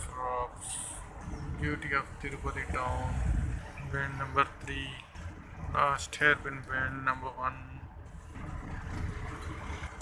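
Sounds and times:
car driving on road: 0.0s - 10.0s.

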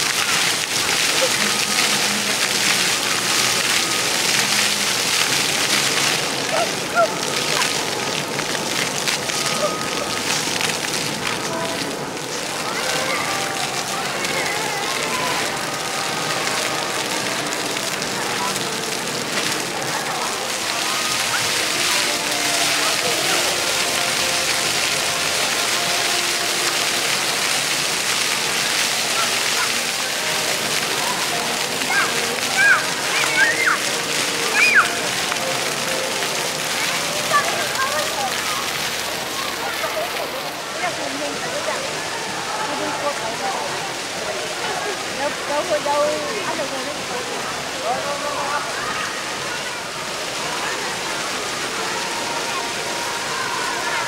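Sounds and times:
fountain jets splashing on pavement: 0.0s - 54.0s
voices chattering: 0.0s - 54.0s
children calling: 5.6s - 45.2s.

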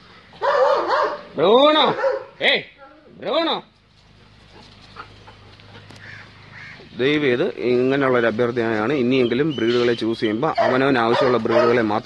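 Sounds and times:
dog barking: 0.4s - 2.4s, 10.5s - 11.9s.

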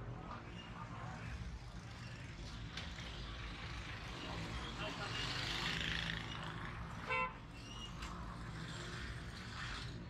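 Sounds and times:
street traffic: 0.0s - 10.0s
vehicle horn toot: 7.1s - 7.4s.

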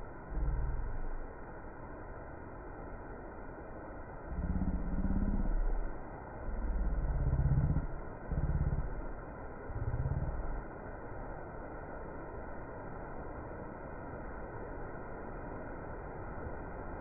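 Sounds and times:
vehicle engine surging: 0.0s - 1.4s, 4.3s - 10.6s.

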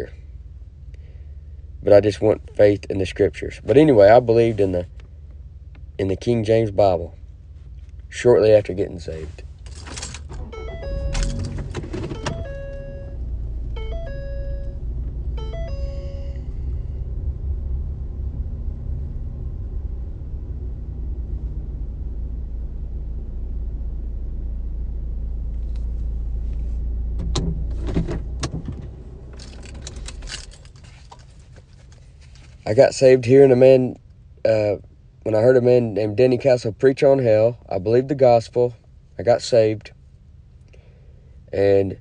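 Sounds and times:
low engine rumble: 0.0s - 42.0s
keys jangling: 9.6s - 10.4s, 11.1s - 12.6s, 29.4s - 32.1s
electronic chime beeping: 10.5s - 13.2s, 13.8s - 16.7s.

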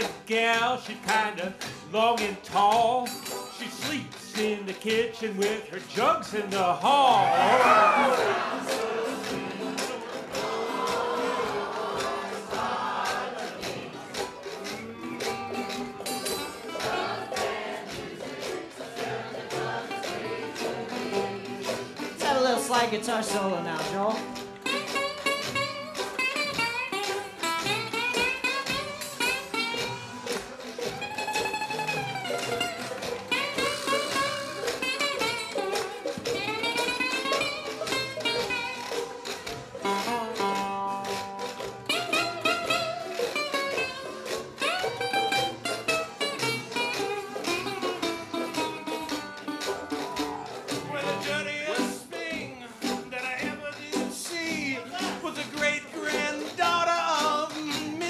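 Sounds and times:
acoustic jug band playing blues: 0.0s - 58.0s
guitar solo: 6.9s - 10.3s, 22.1s - 53.1s.

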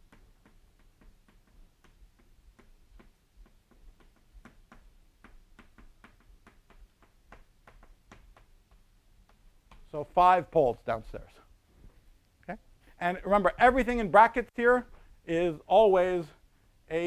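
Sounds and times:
chalk ticking on blackboard: 0.0s - 9.9s.

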